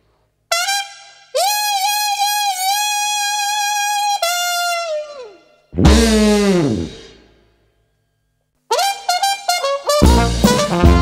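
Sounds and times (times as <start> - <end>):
solo trumpet playing blues: 0.5 - 7.1, 8.7 - 11.0.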